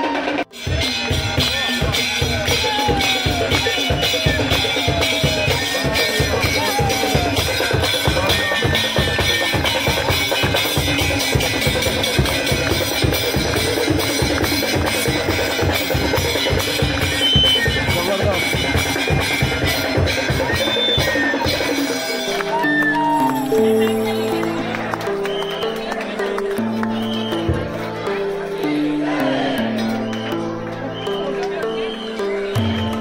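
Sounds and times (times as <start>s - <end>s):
fast drumming: 0.0s - 25.4s
crowd voices: 0.0s - 33.0s.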